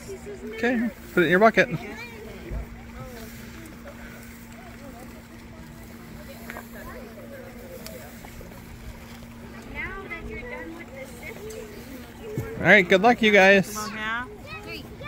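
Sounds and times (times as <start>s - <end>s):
faint voices talking: 0.0s - 15.0s
steady low hum: 0.0s - 15.0s.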